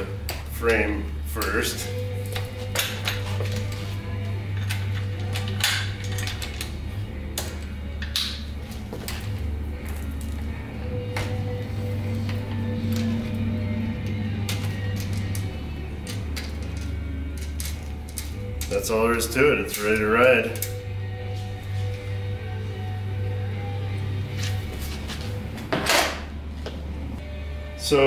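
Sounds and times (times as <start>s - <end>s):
background music with bass line: 0.0s - 28.0s
metal clicks and clanks: 4.5s - 8.4s, 14.0s - 19.0s.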